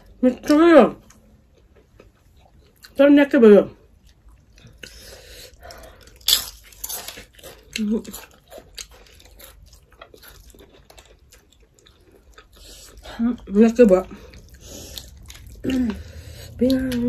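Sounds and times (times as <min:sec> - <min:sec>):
chewing and lip smacking: 0:03.9 - 0:17.0.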